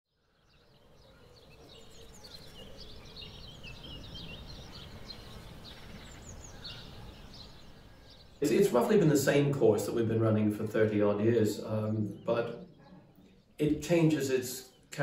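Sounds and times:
bird chirps: 0:00.1 - 0:15.0.

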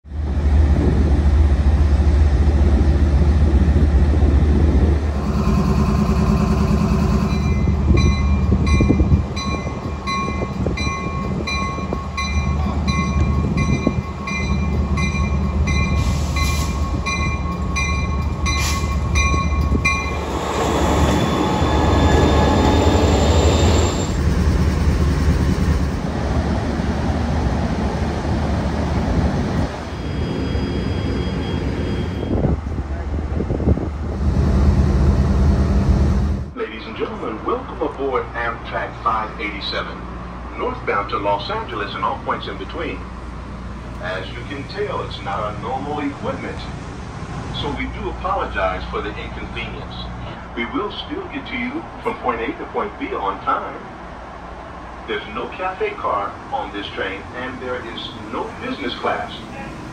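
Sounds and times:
diesel locomotive idling: 0:00.2 - 0:28.5
locomotive bell ringing: 0:05.2 - 0:24.4.

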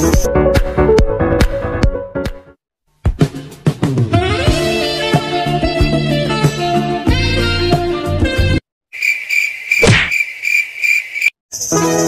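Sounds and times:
background music: 0:00.0 - 0:08.6
insect chirping trill: 0:08.9 - 0:11.8.

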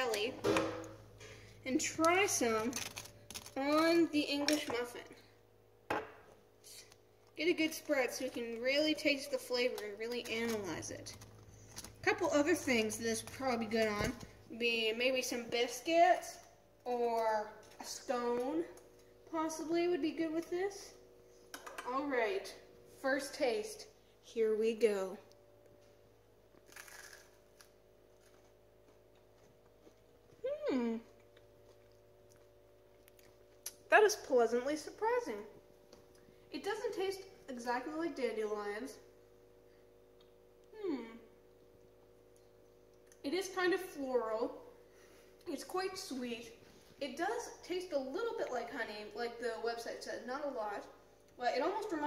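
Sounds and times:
faint room hum: 0:00.0 - 0:52.0
crunch of biting toast: 0:26.6 - 0:28.4.

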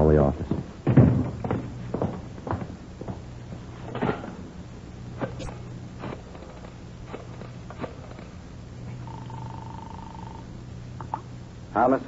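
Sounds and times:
low recording hum: 0:00.0 - 0:12.0
buzzing phone ring tone: 0:07.8 - 0:11.3.

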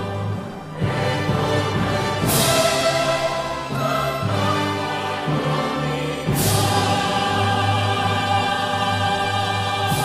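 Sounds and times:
choir and orchestra chord: 0:00.0 - 0:10.0.

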